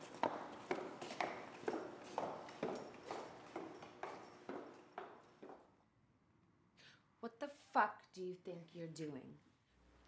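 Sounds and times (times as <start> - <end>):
footsteps on concrete floor: 0.0 - 5.7.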